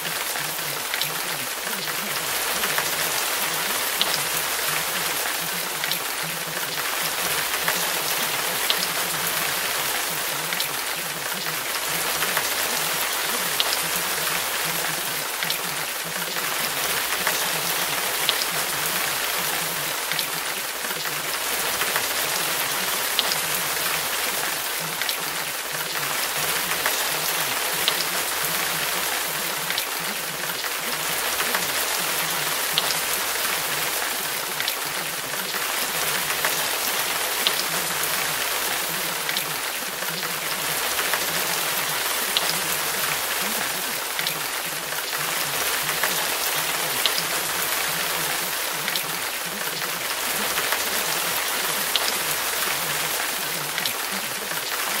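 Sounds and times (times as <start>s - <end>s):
raindrop ticks: 0.0s - 55.0s
steady rain hiss: 0.0s - 55.0s.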